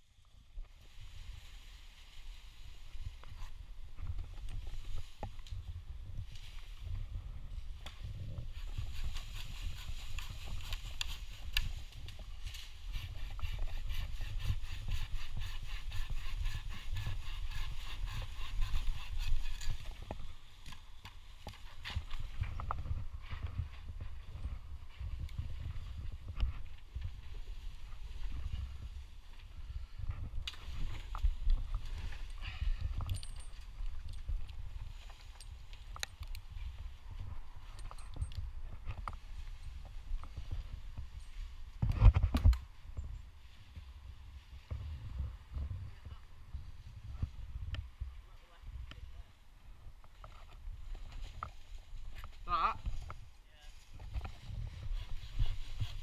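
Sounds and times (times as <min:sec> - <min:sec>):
wind rumble on microphone: 0:00.2 - 0:20.5, 0:21.4 - 0:56.0
hand saw cutting branch: 0:08.5 - 0:11.7, 0:12.7 - 0:20.1
microphone handling noise: 0:21.4 - 0:43.0.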